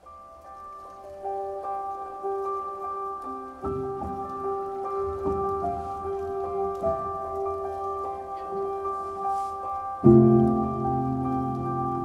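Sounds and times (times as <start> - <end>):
gentle background music: 0.0 - 12.0.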